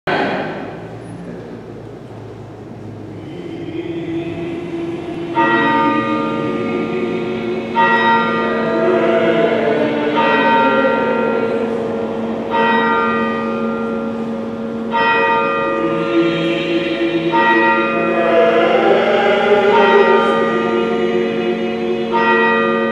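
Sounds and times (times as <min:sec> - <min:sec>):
church bell tolling: 0:03.4 - 0:22.9.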